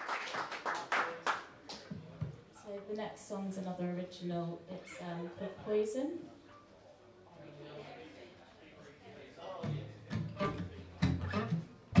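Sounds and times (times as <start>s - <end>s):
acoustic guitar plucked notes: 9.6s - 12.0s.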